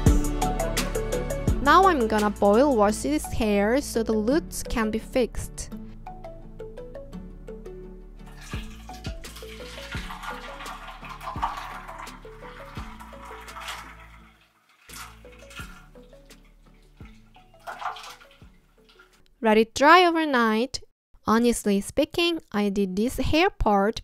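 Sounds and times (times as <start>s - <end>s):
plucked background music: 0.0s - 19.2s
water pouring from kettle: 8.2s - 19.2s
water splashing: 8.3s - 19.2s.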